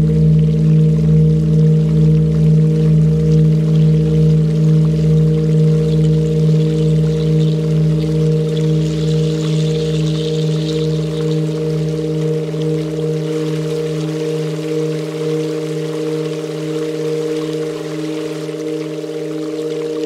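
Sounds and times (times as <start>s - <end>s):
meditation music drone: 0.0s - 20.0s
water trickling: 0.0s - 20.0s.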